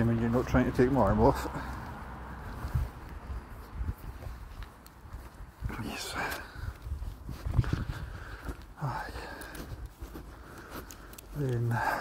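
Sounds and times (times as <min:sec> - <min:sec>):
low thumps from walking: 0:06.8 - 0:08.8.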